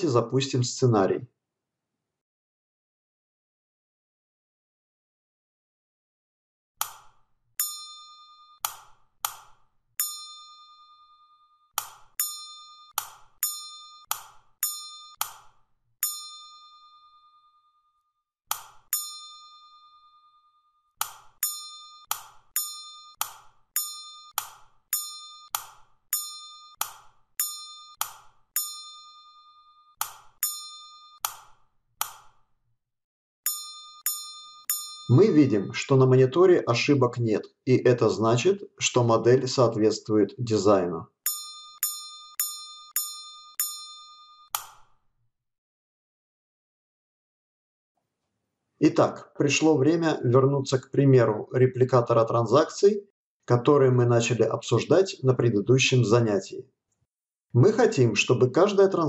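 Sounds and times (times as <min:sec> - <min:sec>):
electronic ding: 0:07.6 - 0:08.8, 0:10.0 - 0:15.4, 0:16.0 - 0:18.0, 0:18.9 - 0:31.4, 0:33.5 - 0:35.9, 0:41.3 - 0:44.6.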